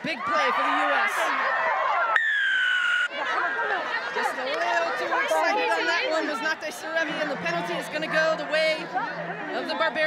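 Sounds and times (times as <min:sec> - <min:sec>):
referee's whistle blast: 0:02.2 - 0:03.2.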